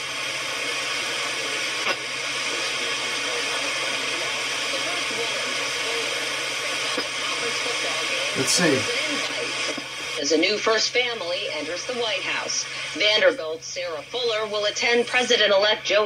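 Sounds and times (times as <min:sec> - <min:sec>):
radio static hiss: 0:00.0 - 0:10.1
faint newscaster voice: 0:08.4 - 0:09.0.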